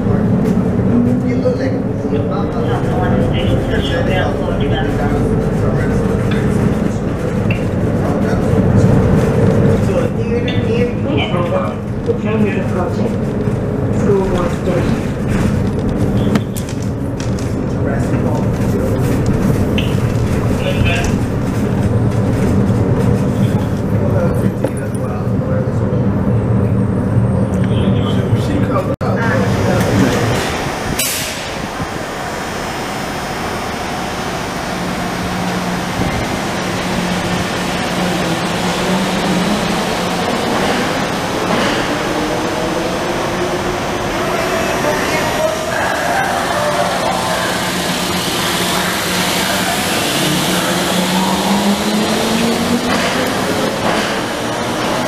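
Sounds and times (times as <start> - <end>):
people-mover cars running: 0.0 - 55.0.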